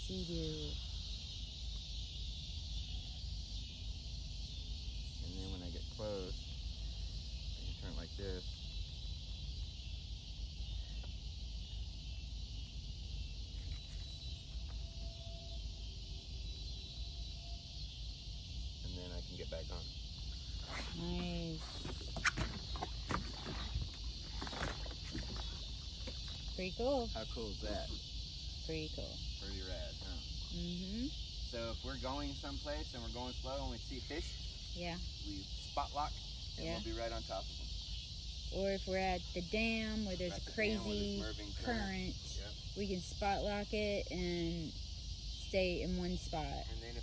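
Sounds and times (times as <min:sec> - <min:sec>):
steady high hiss: 0:00.0 - 0:47.0
indistinct talk: 0:28.7 - 0:37.4, 0:38.5 - 0:44.7.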